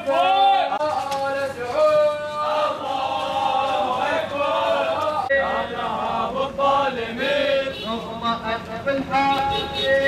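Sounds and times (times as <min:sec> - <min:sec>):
men chanting in rhythm: 0:00.0 - 0:10.0.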